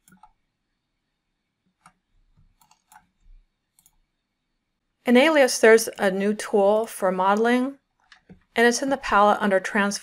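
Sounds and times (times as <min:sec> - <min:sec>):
faint mouse clicks: 0:03.8 - 0:04.0.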